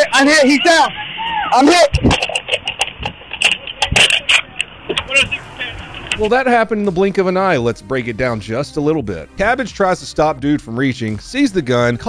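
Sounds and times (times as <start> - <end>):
muffled crackly recording: 0.0 - 10.0
sharp clicks and knocks: 1.9 - 5.3
voice bursts: 3.9 - 6.2.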